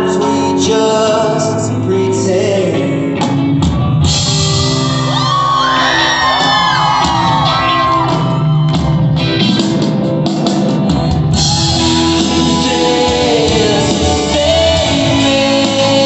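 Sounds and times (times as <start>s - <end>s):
live pop-rock band: 0.0s - 16.0s
crowd shouting and whooping: 3.8s - 15.2s.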